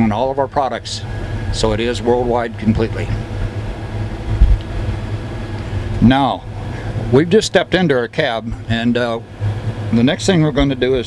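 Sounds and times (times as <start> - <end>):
faint steady hum: 0.0 - 11.0
low machine rumble: 0.0 - 11.0.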